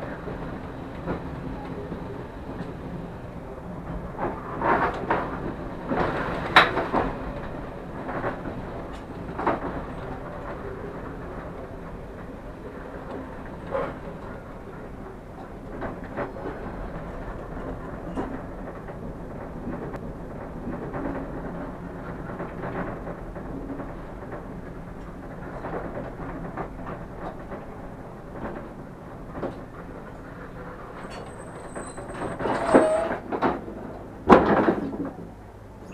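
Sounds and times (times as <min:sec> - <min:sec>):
train running noise: 0:00.0 - 0:35.9
wheels knocking over rail joints: 0:13.0 - 0:35.9.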